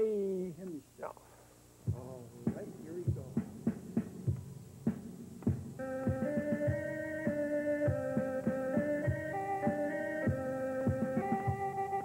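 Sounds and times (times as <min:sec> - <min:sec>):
steady hum: 0:00.0 - 0:12.0
low drumbeat: 0:01.8 - 0:09.3.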